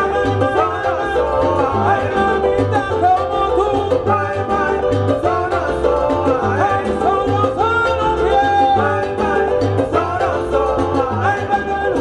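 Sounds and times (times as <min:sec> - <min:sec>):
congas: 0:00.0 - 0:12.0
keyboard: 0:00.0 - 0:12.0
people singing: 0:00.0 - 0:12.0
rhythmic bass line: 0:00.0 - 0:12.0.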